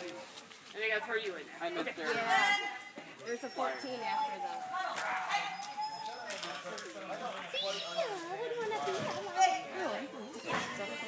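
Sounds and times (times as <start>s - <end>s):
dog whining: 3.2s - 6.7s, 7.6s - 11.0s.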